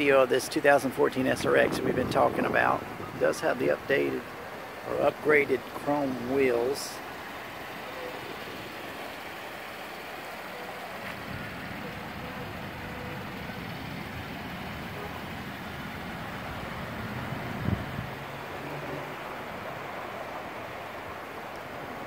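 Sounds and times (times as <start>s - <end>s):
road traffic: 0.0s - 22.0s.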